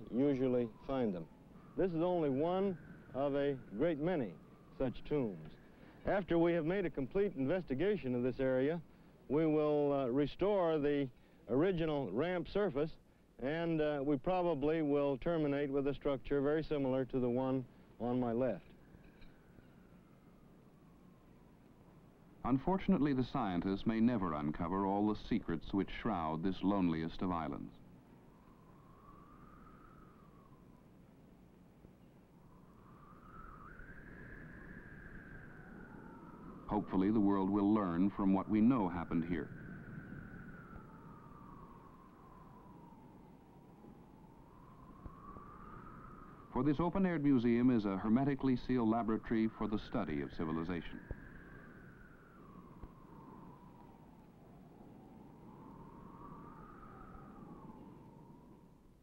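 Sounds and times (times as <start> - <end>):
whistle-like tone: 0.0 - 5.8, 27.6 - 31.0, 31.9 - 58.8
low background hiss: 0.0 - 59.0.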